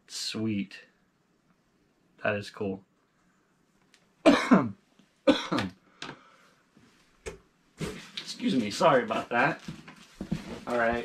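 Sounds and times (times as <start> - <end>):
man coughing: 4.3 - 5.7.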